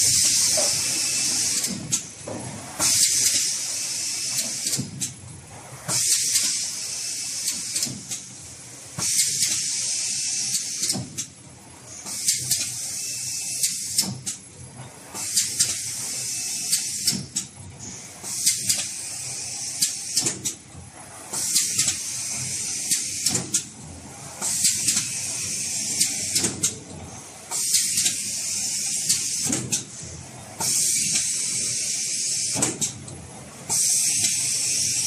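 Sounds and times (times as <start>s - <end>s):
printing machine running: 0.0s - 35.0s
mechanism clicks and knocks: 26.0s - 26.9s, 32.6s - 33.2s.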